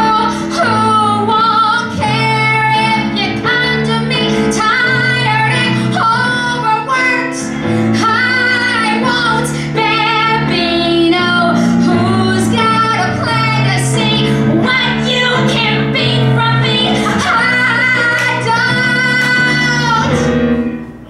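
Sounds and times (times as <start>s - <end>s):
woman singing with vibrato: 0.0s - 20.4s
instrumental accompaniment: 0.0s - 21.0s.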